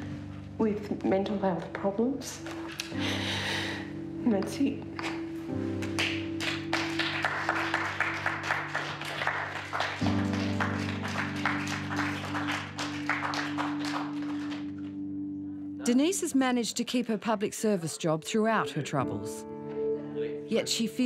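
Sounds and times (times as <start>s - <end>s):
background music of sustained chords: 0.0s - 21.0s
small group applauding: 5.0s - 15.0s.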